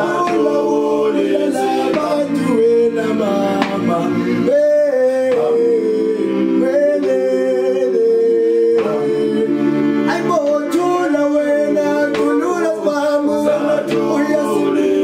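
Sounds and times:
men singing in harmony: 0:00.0 - 0:15.0.

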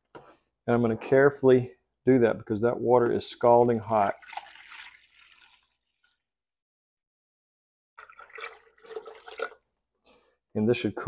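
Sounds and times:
water pouring into plastic pitcher: 0:03.4 - 0:06.2, 0:08.0 - 0:09.7.

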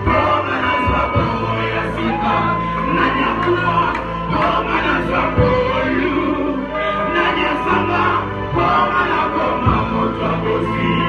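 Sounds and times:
man singing into a microphone: 0:00.0 - 0:05.8
drum kit: 0:00.0 - 0:06.1
congregation singing: 0:00.0 - 0:11.0.

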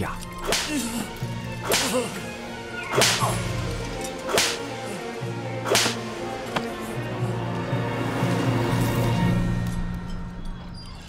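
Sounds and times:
background music: 0:00.0 - 0:11.0
whip cracks: 0:00.4 - 0:00.8, 0:01.6 - 0:02.1, 0:02.9 - 0:03.4, 0:04.3 - 0:04.7, 0:05.6 - 0:06.0.

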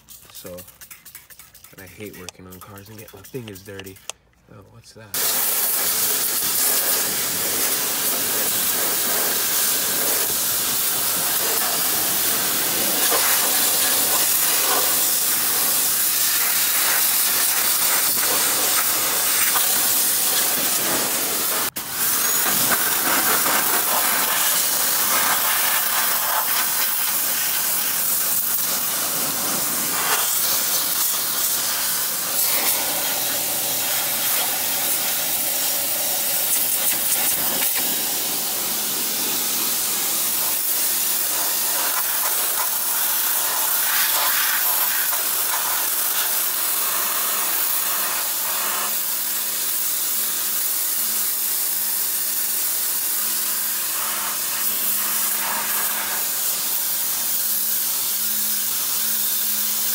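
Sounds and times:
pressure washer spraying water: 0:00.0 - 0:04.1, 0:05.2 - 0:59.9.

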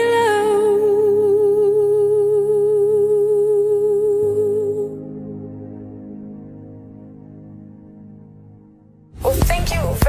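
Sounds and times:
woman singing long note: 0:00.0 - 0:05.4.

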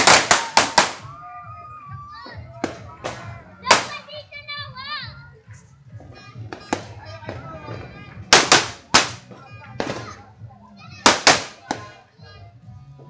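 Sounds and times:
firecrackers banging: 0:00.0 - 0:01.2, 0:02.3 - 0:04.2, 0:06.0 - 0:10.3, 0:11.0 - 0:12.0
children shouting and chattering: 0:00.0 - 0:13.0.

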